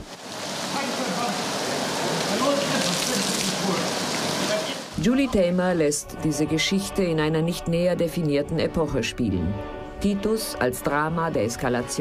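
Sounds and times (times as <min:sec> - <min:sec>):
heavy rain on wet ground: 0:00.0 - 0:05.0.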